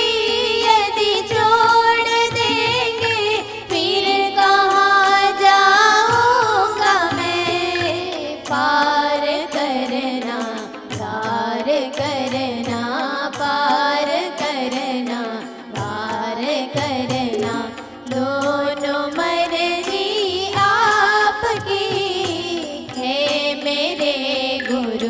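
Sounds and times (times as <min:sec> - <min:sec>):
harmonium: 0:00.0 - 0:25.0
tabla beat: 0:00.0 - 0:25.0
women singing devotional song: 0:00.0 - 0:25.0.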